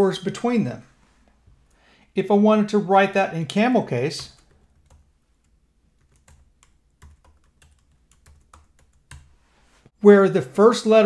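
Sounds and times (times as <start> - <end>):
faint keyboard typing: 4.1 - 9.4.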